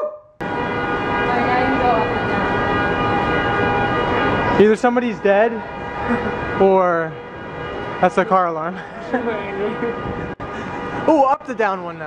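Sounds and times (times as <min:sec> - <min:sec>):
vehicle horn sounding continuously: 0:00.4 - 0:11.4.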